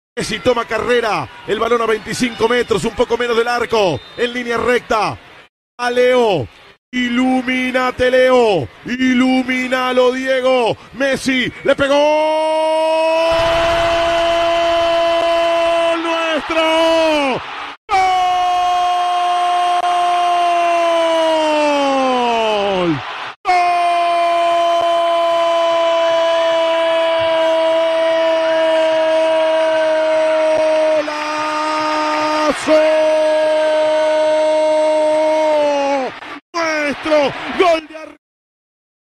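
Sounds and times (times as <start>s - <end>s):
commentator shouting goal cry: 7.0s - 38.2s.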